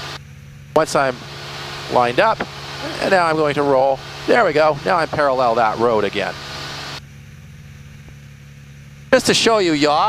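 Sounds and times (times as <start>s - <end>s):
propeller plane engine droning: 0.0s - 10.0s.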